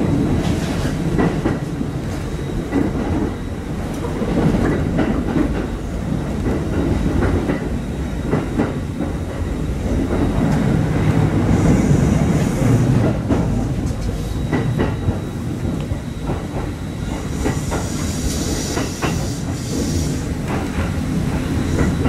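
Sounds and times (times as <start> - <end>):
electric train rumbling: 0.0 - 22.0.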